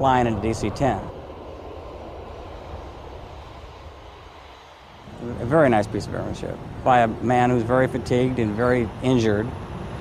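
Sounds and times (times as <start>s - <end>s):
jet engines rumbling: 0.0s - 10.0s.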